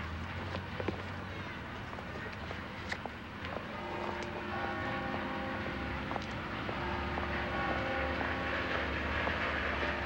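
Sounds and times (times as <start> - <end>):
train rumbling: 0.0 - 10.0.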